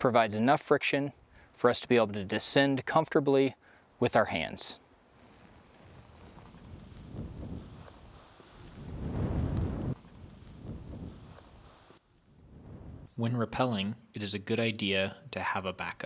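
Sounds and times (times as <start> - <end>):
wind buffeting microphone: 5.6 - 13.2.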